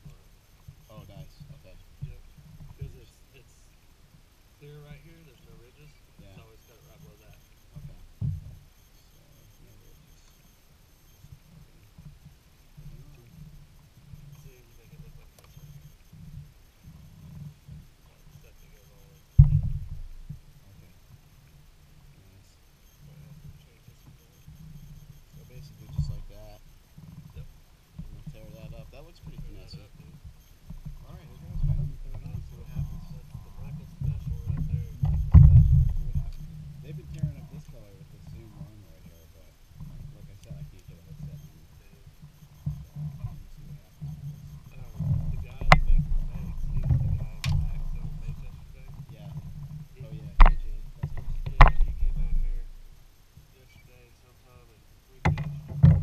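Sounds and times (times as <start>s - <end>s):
faint indistinct voices: 0.0s - 3.8s, 4.6s - 16.4s, 17.2s - 19.6s, 22.0s - 26.7s, 28.1s - 52.8s, 53.5s - 56.0s
low uneven microphone rumble: 0.0s - 56.0s.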